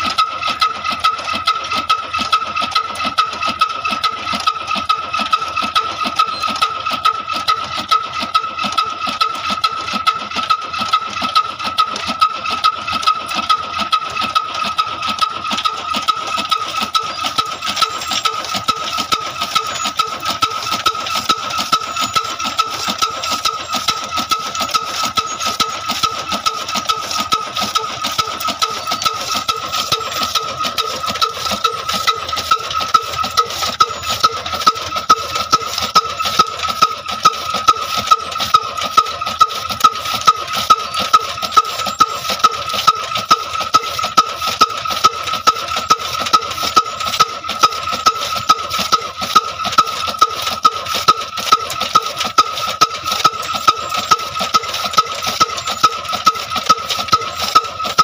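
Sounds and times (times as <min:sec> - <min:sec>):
diesel engine running: 0:00.0 - 0:58.0
chaff cutter chopping fodder: 0:01.7 - 0:58.0.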